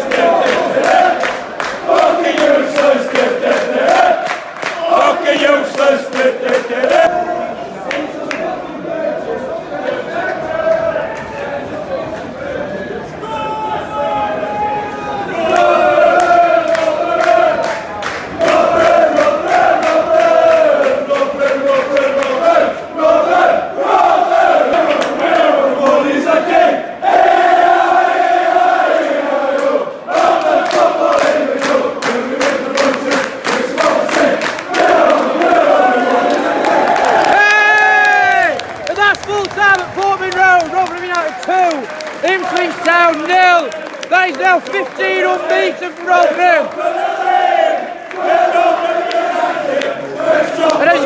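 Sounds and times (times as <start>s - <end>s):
crowd clapping: 0.0s - 7.1s, 7.8s - 8.6s, 15.4s - 22.7s, 29.6s - 51.0s
crowd chanting: 0.0s - 51.0s.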